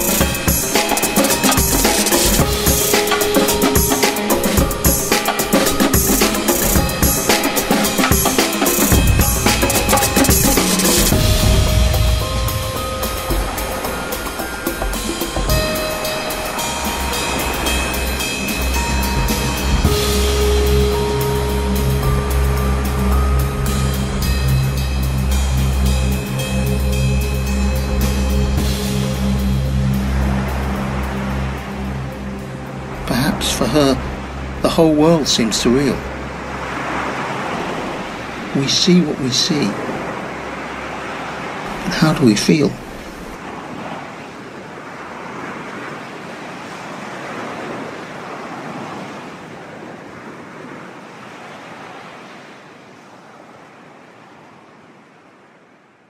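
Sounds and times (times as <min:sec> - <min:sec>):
percussion and piano melody: 0:00.0 - 0:31.3
low sustained musical tone: 0:00.0 - 0:38.9
ocean waves washing: 0:00.0 - 0:56.0.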